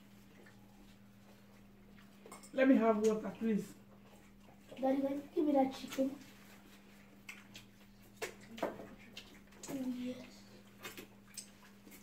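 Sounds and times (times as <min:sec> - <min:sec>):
eating mouth sounds: 0:06.6 - 0:12.0.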